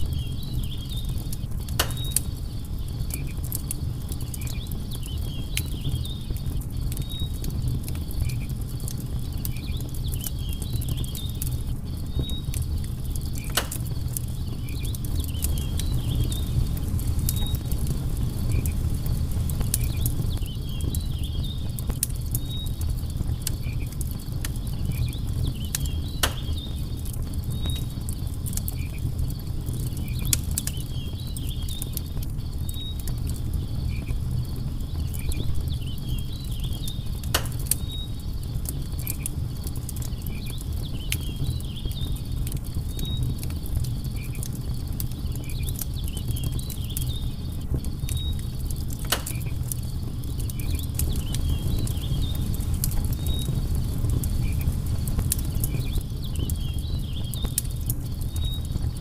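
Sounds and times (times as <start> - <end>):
campfire crackling: 0.0 - 59.0
sharp fire pops: 0.0 - 59.0
faint insect chirps: 24.7 - 59.0.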